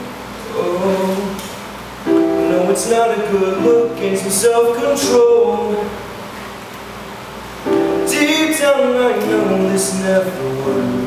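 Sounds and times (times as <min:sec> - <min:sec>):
digital piano chord: 0:02.0 - 0:06.5, 0:07.6 - 0:11.0
person singing: 0:02.3 - 0:06.0, 0:07.8 - 0:11.0.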